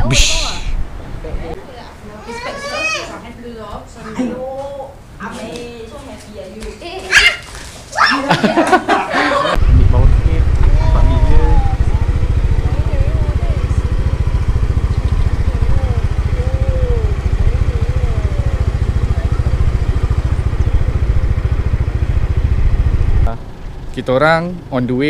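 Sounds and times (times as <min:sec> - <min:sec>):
wind buffeting microphone: 0:09.6 - 0:23.3
small motorbike engine running: 0:09.6 - 0:25.0
faint voices: 0:10.6 - 0:21.1.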